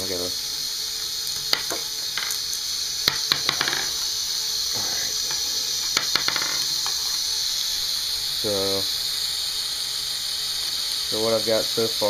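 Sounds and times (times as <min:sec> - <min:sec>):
constant hiss: 0:00.0 - 0:12.0
toy marble machine whirring: 0:00.0 - 0:12.0.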